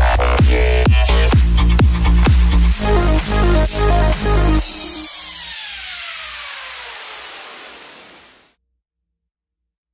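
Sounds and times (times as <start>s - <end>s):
electronic falling noise sweep: 2.7s - 8.6s.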